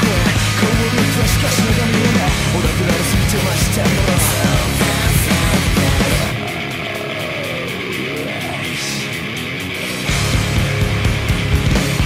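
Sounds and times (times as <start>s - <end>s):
heavy rock music: 0.0s - 12.0s.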